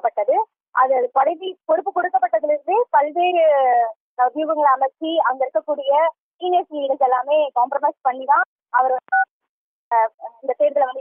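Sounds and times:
two-tone beep: 0:09.0 - 0:09.3.

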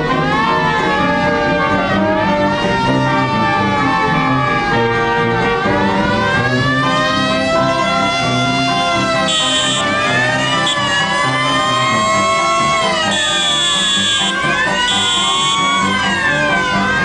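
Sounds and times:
siren wailing: 0:00.0 - 0:17.0
trad jazz band playing: 0:00.3 - 0:17.0.

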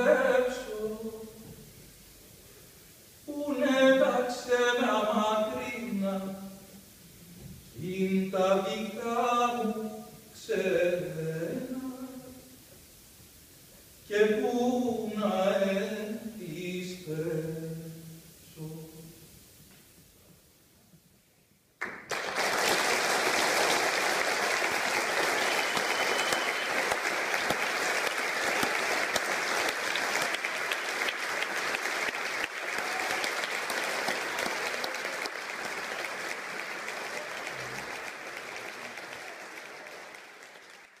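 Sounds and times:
audience applauding: 0:21.8 - 0:41.0.

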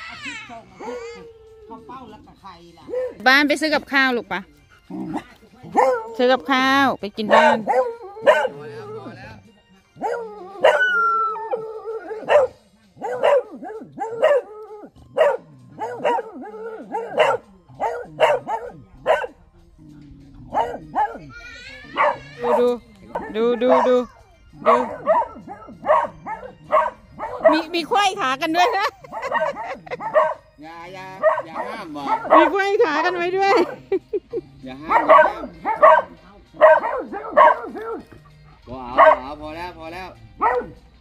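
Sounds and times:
dog barking: 0:02.8 - 0:03.3, 0:05.1 - 0:06.3, 0:07.2 - 0:08.9, 0:10.0 - 0:19.4, 0:20.5 - 0:21.3, 0:21.9 - 0:28.0, 0:28.8 - 0:30.5, 0:31.2 - 0:32.8, 0:33.4 - 0:33.9, 0:34.8 - 0:39.4, 0:40.4 - 0:40.9.

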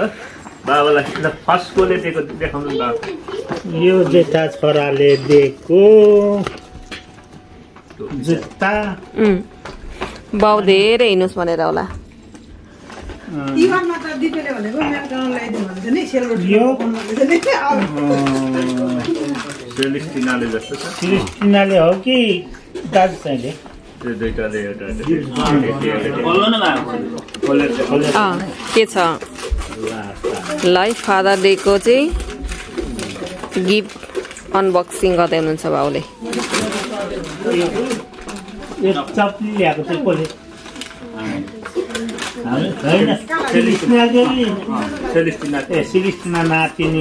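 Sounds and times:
bag rustling: 0:25.0 - 0:47.0.

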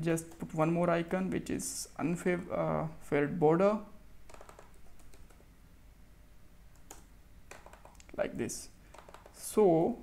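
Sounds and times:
faint keyboard typing: 0:04.2 - 0:05.5, 0:06.7 - 0:08.2, 0:08.8 - 0:09.5.

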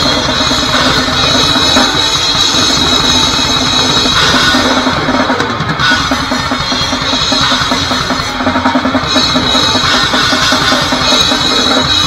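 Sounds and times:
distorted guitar: 0:00.0 - 0:12.0
fast drumming on drum kit: 0:00.0 - 0:12.0.

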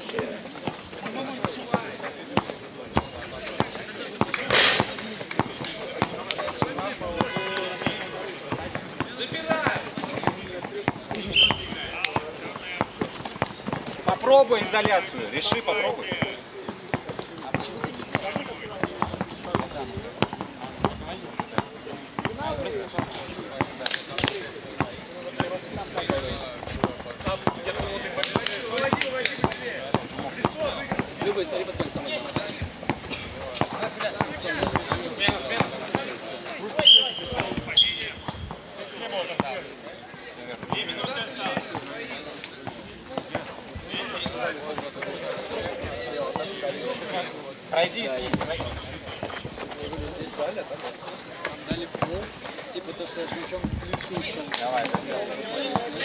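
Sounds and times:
players' voices: 0:00.0 - 0:56.0
basketball dribbling: 0:05.2 - 0:36.2, 0:42.6 - 0:44.9.

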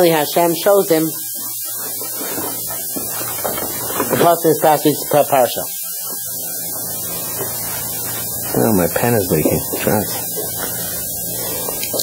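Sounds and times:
constant hiss: 0:00.0 - 0:12.0
low electrical mains hum: 0:00.0 - 0:12.0.

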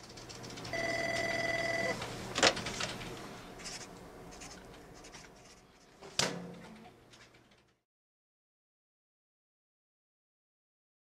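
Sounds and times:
low steady hum: 0:00.0 - 0:07.8
electronic telephone ringing: 0:00.7 - 0:02.0.

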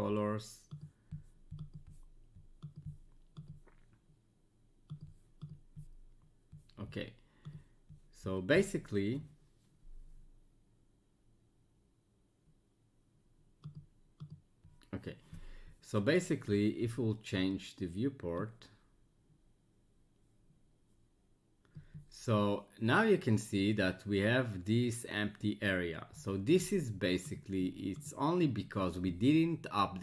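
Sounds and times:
computer mouse clicks: 0:00.1 - 0:04.1, 0:04.8 - 0:06.8, 0:07.4 - 0:08.0, 0:13.6 - 0:14.8.

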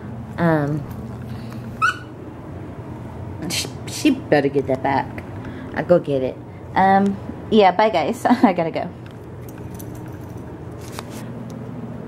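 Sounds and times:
steady low hum: 0:00.0 - 0:12.0
squeaky dog toy squeak: 0:01.8 - 0:02.1.

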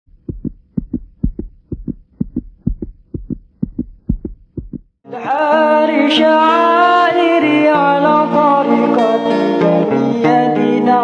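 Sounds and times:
heartbeat thumps: 0:00.1 - 0:05.0.

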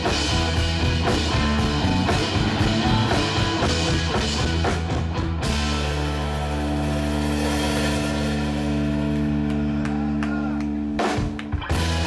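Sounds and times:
distorted electric guitar chord: 0:05.4 - 0:09.6.

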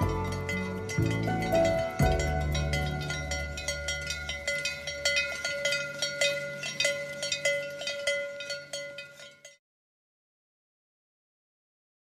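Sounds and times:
cowbells ringing: 0:00.0 - 0:09.6.

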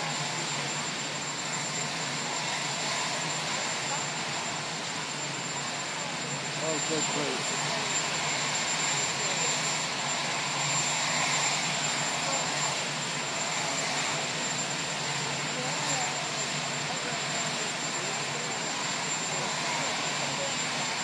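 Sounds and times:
faint voices of onlookers: 0:00.0 - 0:21.0
steady roar with high whine: 0:00.0 - 0:21.0.

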